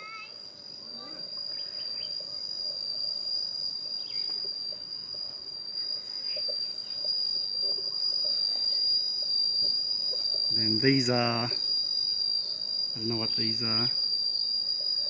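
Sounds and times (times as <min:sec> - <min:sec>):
insects droning high-pitched: 0:00.0 - 0:15.0.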